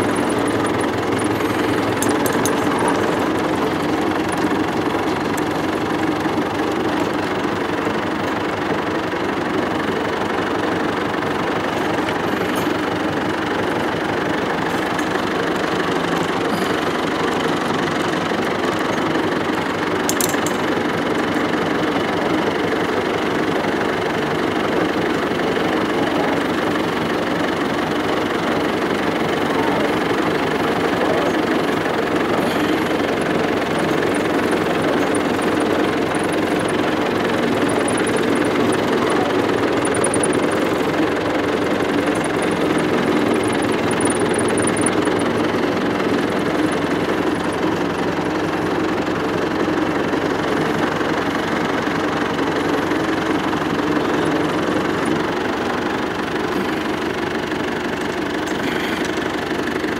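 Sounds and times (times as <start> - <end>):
tractor engine running: 0.0 - 59.9.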